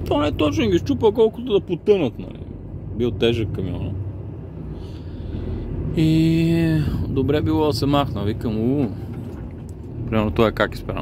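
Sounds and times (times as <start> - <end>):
diesel engine drone in cab: 0.0 - 11.0
road noise: 0.0 - 11.0.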